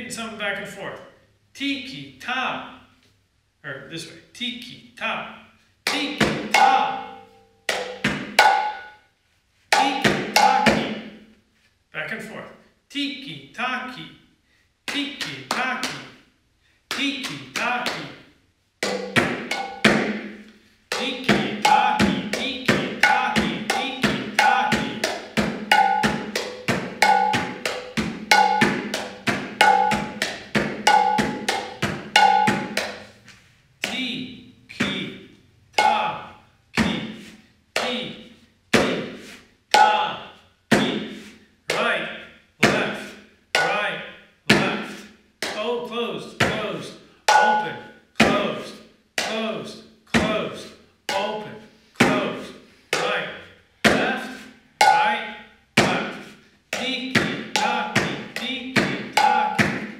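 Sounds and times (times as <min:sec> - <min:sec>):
hand drum strokes: 0:09.7 - 0:11.1, 0:18.8 - 0:33.3, 0:57.2 - 0:59.9.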